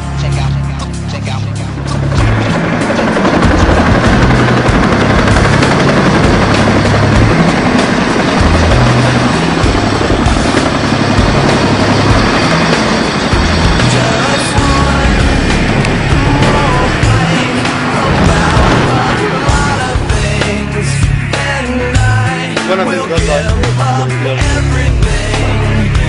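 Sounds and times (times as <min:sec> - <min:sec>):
music with heavy bass line: 0:00.0 - 0:12.6, 0:13.3 - 0:26.0
helicopter rotor noise: 0:00.0 - 0:26.0
wind buffeting microphone: 0:14.6 - 0:20.5.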